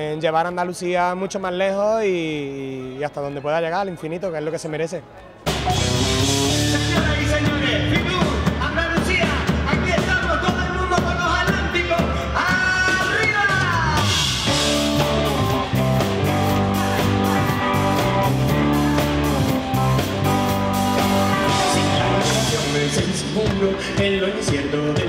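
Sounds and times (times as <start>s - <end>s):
live rock band playing: 5.4s - 25.0s.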